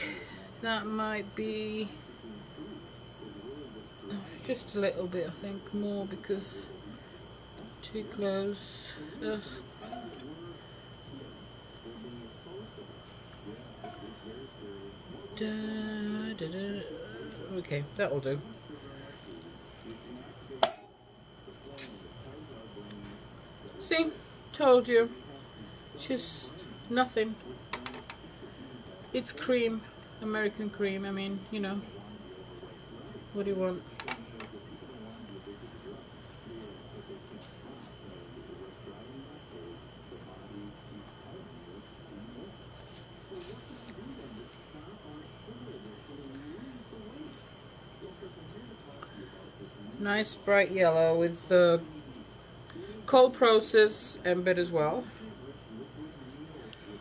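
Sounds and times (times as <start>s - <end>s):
faint high whine: 0.0s - 57.0s.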